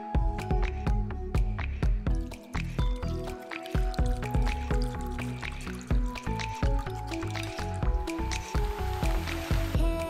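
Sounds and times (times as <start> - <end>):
background music with steady beat: 0.0 - 10.0
liquid trickling into bowl: 2.1 - 9.8.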